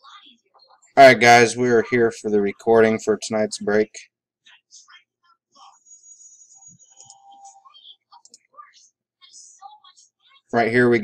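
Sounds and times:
faint background speech: 0:04.4 - 0:11.0.

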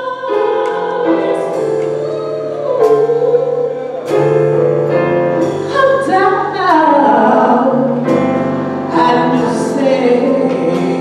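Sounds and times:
instrumental accompaniment: 0:00.0 - 0:11.0.

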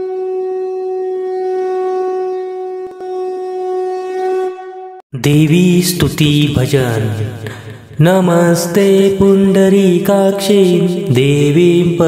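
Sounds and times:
conch shell blown: 0:00.0 - 0:05.0.

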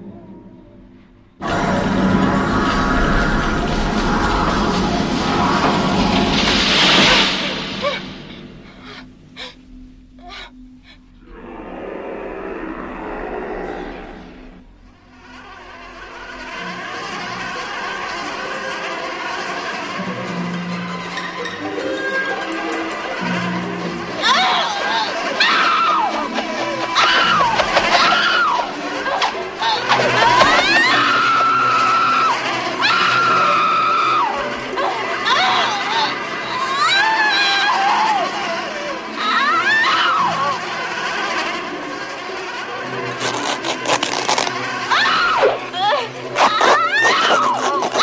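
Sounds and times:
woman screaming: 0:24.2 - 0:26.3, 0:27.0 - 0:40.6, 0:44.9 - 0:48.0.

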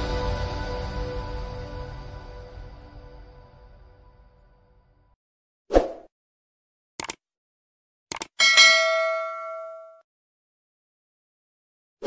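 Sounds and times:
short clicks: 0:07.0 - 0:07.2, 0:08.1 - 0:08.4
notification bell ding: 0:08.4 - 0:10.0.

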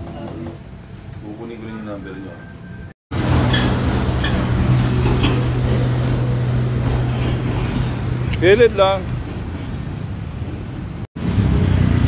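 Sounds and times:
traffic noise: 0:00.0 - 0:12.0
car engine humming: 0:03.1 - 0:11.1.

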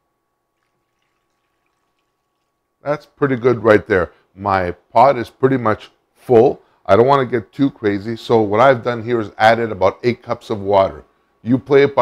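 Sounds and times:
water trickling into a pot: 0:00.6 - 0:02.8
man speaking: 0:02.8 - 0:12.0.

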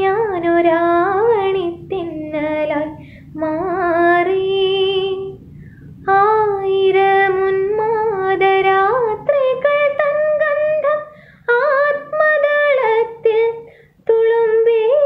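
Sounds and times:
breaths: 0:03.0 - 0:03.4, 0:05.4 - 0:06.0, 0:11.1 - 0:11.5, 0:13.6 - 0:14.0.

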